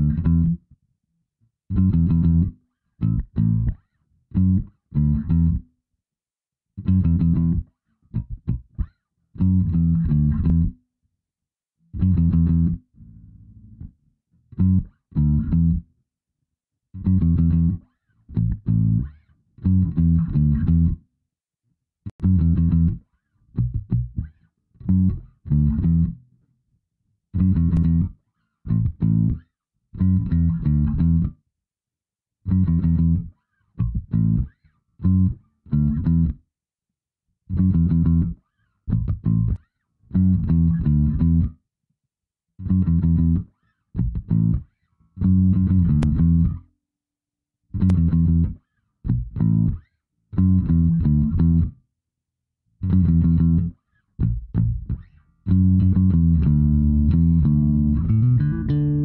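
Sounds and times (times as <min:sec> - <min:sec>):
solo bass guitar bassline: 0:00.0 - 0:00.8, 0:01.7 - 0:05.7, 0:06.8 - 0:10.8, 0:11.9 - 0:15.9, 0:17.0 - 0:21.1, 0:22.1 - 0:26.3, 0:27.4 - 0:31.4, 0:32.5 - 0:36.4, 0:37.5 - 0:41.6, 0:42.6 - 0:46.7, 0:47.7 - 0:51.8, 0:52.8 - 0:59.0.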